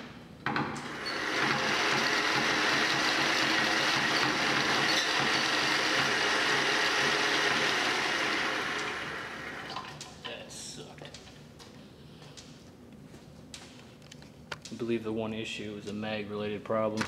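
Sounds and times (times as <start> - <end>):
hand-cranked pulley and cable running: 1.0 - 9.8.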